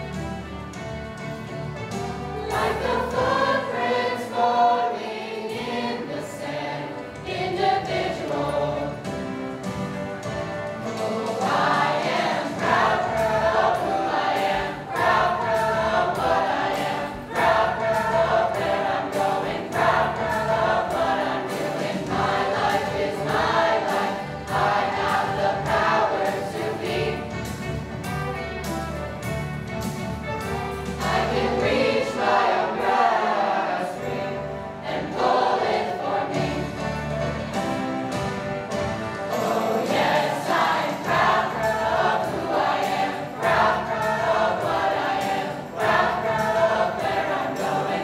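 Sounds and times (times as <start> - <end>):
choir singing: 2.0 - 28.8, 30.4 - 48.0.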